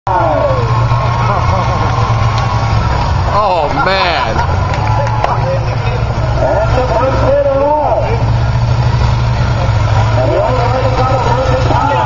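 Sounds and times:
combine harvester engines rumbling: 0.1s - 12.0s.

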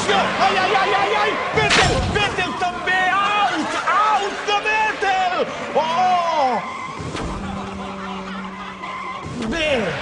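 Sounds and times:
tyres squealing and skidding: 0.0s - 10.0s
men crying out: 5.3s - 10.0s.

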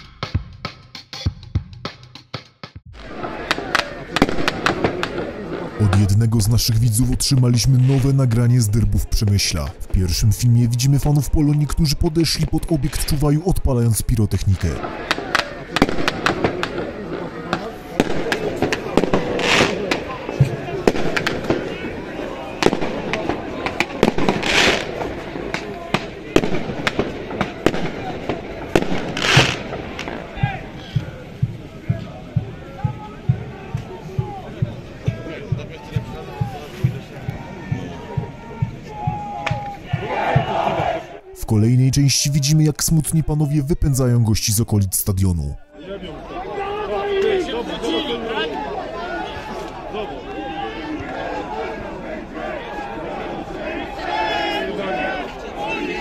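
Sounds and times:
firecrackers banging: 3.0s - 8.0s, 22.6s - 31.8s
crowd voices: 3.0s - 56.0s.

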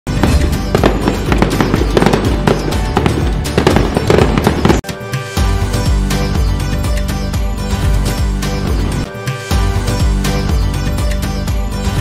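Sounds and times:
fireworks crackling and banging: 0.1s - 4.8s
music with held chords: 0.1s - 12.0s.

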